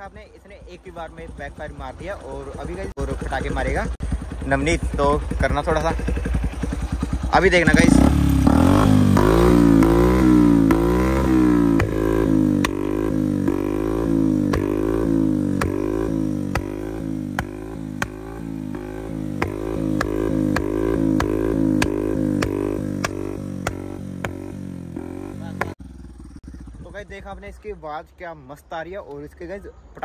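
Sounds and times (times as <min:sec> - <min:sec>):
motorcycle engine revving: 0:00.0 - 0:27.6
exhaust backfire pops: 0:08.2 - 0:24.6.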